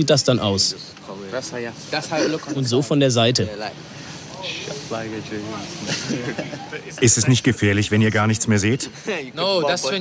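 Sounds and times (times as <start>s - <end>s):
young men talking quietly: 0.0s - 10.0s.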